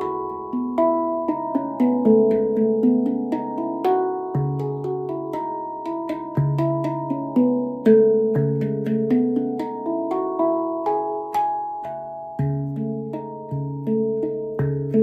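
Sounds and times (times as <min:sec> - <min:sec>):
handpan notes ringing: 0:00.0 - 0:15.0.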